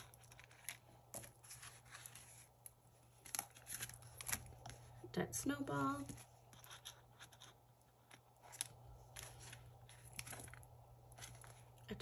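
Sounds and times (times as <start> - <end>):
plastic envelopes clicking and crinkling: 0.0 - 4.9, 7.2 - 12.0.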